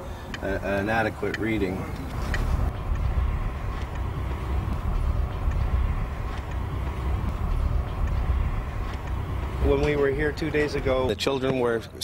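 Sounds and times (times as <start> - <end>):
low rumble with light hiss: 0.0 - 12.0.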